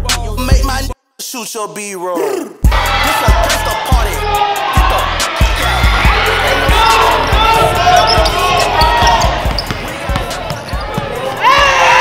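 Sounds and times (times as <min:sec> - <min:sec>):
crowd cheering and shouting: 0:02.6 - 0:12.0
basketball bouncing on wooden floor: 0:07.6 - 0:11.8.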